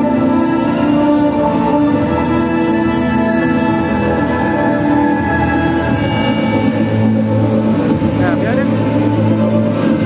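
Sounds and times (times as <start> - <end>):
stage-show music with low drone: 0.0 - 10.0.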